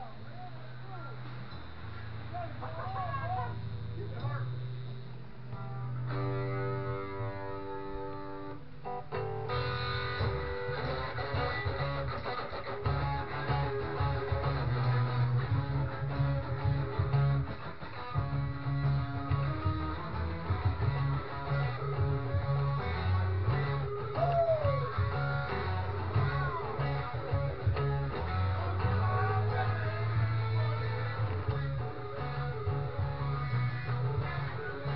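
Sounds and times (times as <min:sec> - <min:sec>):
electric guitar through amplifier: 0:00.0 - 0:34.9
low bass notes: 0:00.0 - 0:34.9.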